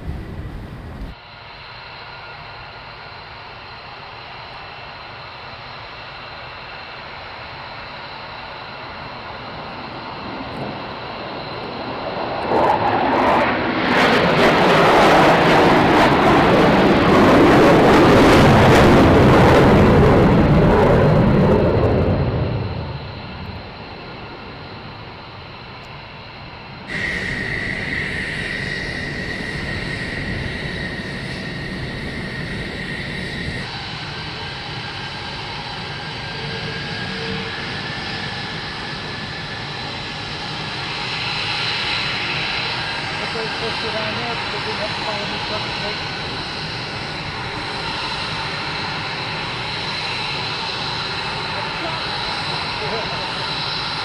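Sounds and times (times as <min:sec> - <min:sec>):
jet engines roaring: 0:00.0 - 0:54.0
taxiing jet engine whine: 0:00.0 - 0:54.0.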